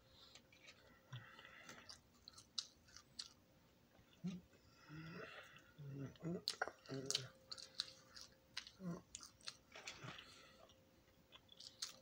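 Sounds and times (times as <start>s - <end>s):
person chewing fries: 0.0s - 4.6s, 5.2s - 12.0s.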